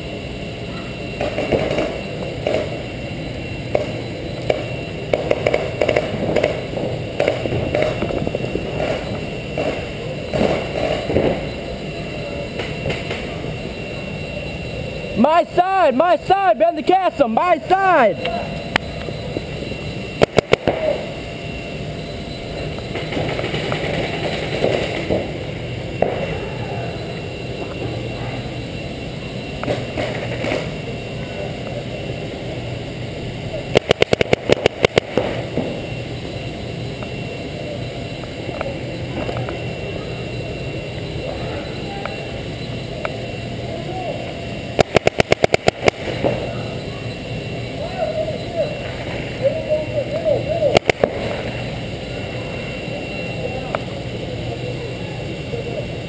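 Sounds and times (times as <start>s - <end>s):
indoor arena background noise: 0.0s - 56.0s
paintball marker firing: 20.2s - 21.0s, 33.7s - 35.3s, 44.8s - 46.4s.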